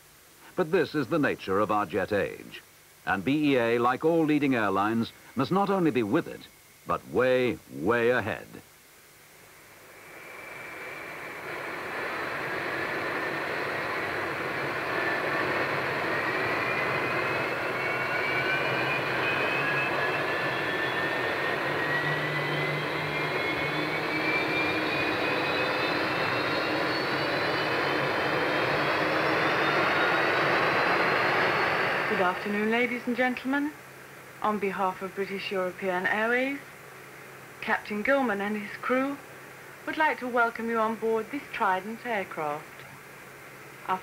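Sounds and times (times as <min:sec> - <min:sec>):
jet engines spooling up: 0:09.4 - 0:34.1.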